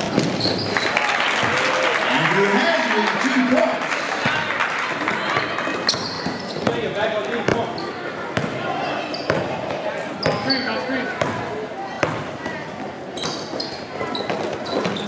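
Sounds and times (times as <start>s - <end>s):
sneaker squeaks: 0.0s - 1.0s, 5.8s - 15.0s
chatter of voices: 1.7s - 15.0s
basketball bouncing on gym floor: 5.3s - 10.6s, 11.2s - 15.0s.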